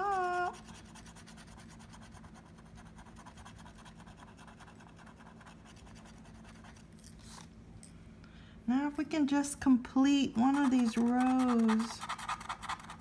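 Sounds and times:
stylus scratching a ticket: 0.0 - 7.4, 10.4 - 13.0.

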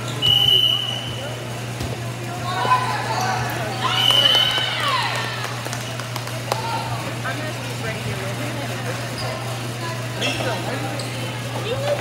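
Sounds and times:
chatter of people: 0.0 - 12.0.

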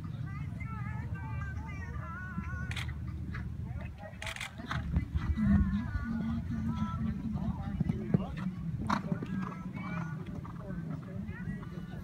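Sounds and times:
background voices: 0.1 - 12.0
horse hoofbeats on sand: 4.6 - 12.0.

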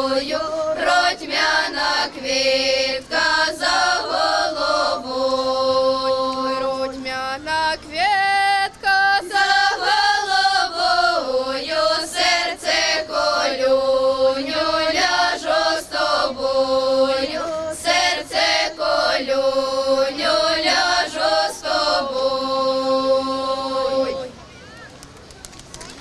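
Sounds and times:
women's choir singing unaccompanied: 0.0 - 24.4.

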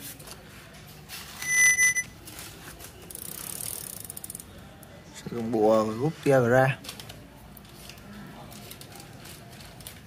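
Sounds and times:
short high electronic beep: 1.4 - 2.1
bicycle freewheel ticking: 3.1 - 4.6.

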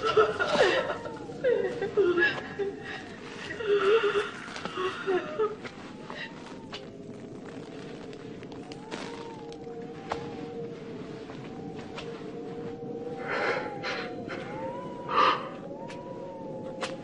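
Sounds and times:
film underscore with held low note: 0.0 - 17.0
faint clicks: 0.4 - 17.0.

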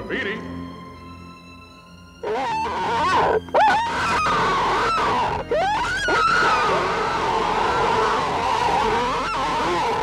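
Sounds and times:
cartoon creatures crying out: 2.2 - 10.0.

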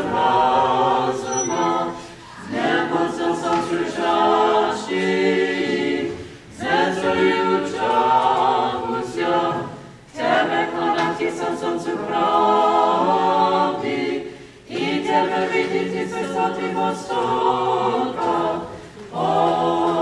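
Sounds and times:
choir singing a cappella: 0.0 - 20.0.

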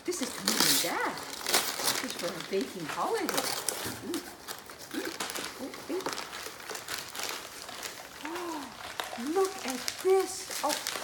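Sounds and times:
wrapping paper crinkling: 0.0 - 11.0.

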